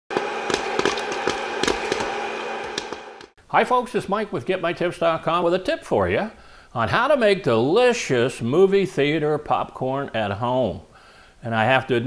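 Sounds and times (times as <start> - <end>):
popcorn popper fan whirring: 0.1 - 3.3
popcorn popping: 0.1 - 3.3.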